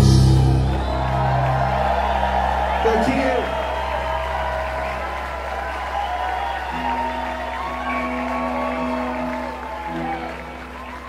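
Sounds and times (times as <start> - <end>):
low bass drone: 0.0 - 2.8
rock band holding chords: 0.0 - 11.0.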